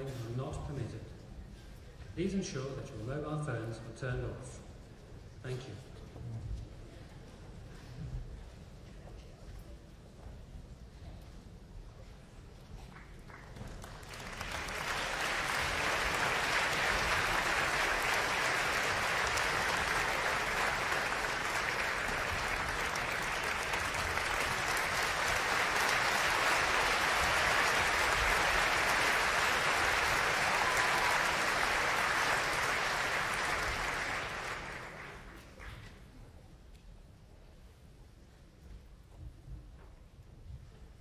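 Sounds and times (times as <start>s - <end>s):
audience applauding: 13.0s - 35.8s.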